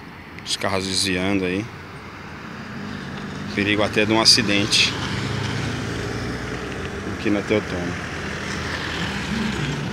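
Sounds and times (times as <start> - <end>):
car driving past: 2.4 - 9.9.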